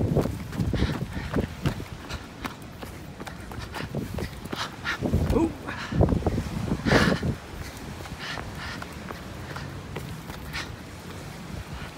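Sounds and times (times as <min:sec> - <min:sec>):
running footsteps on dirt: 0:00.0 - 0:11.9.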